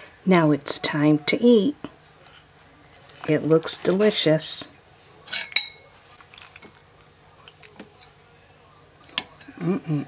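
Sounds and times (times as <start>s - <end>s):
spoon clinking on bowl: 5.3s - 5.9s.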